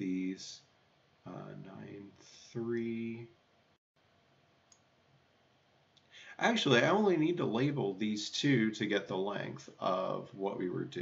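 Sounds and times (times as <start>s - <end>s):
faint click: 4.7s - 4.9s.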